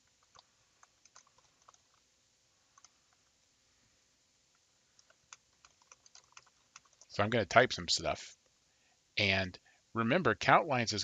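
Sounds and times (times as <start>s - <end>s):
computer keyboard keystrokes: 0.1s - 2.0s, 5.0s - 7.1s.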